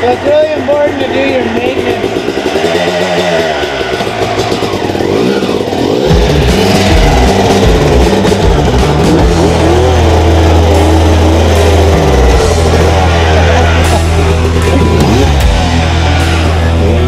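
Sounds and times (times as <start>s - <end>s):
dirt bike engine revving: 0.0s - 17.0s
loud rock music: 0.0s - 17.0s.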